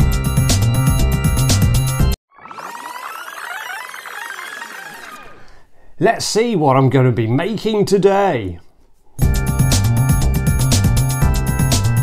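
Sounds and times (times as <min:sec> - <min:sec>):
synthesizer tones gliding: 0:02.3 - 0:05.6.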